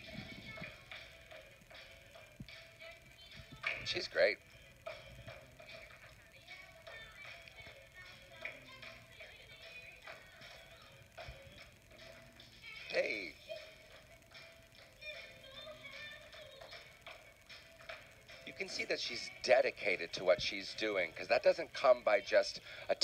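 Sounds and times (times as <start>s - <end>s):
faint background music: 0.0s - 23.0s.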